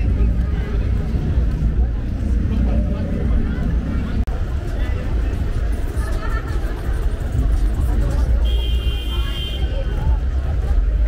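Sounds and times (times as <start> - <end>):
low rumble of traffic: 0.0 - 11.0
passers-by talking: 0.0 - 11.0.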